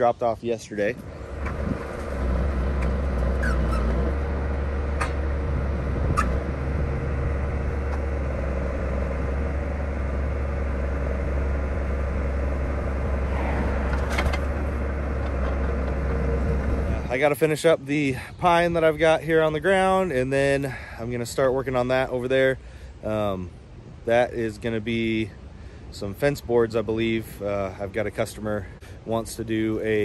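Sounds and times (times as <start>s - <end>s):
diesel truck engine running: 0.8s - 24.1s.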